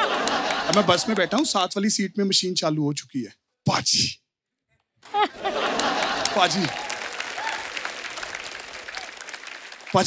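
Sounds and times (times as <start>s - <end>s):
audience applauding: 0.0s - 1.6s, 5.5s - 10.0s.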